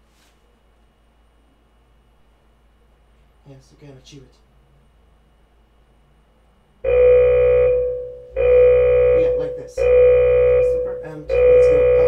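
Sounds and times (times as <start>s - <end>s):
timer alarm beep: 6.9s - 12.0s.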